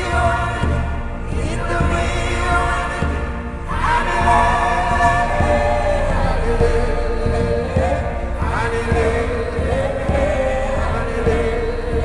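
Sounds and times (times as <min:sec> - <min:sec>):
low thumps: 0:00.0 - 0:12.0
voices singing in harmony: 0:00.0 - 0:12.0.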